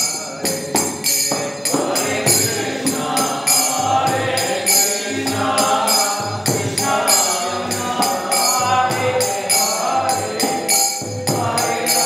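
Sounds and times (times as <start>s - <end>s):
small hand cymbals striking: 0.0s - 12.0s
voices singing devotional song: 0.0s - 12.0s.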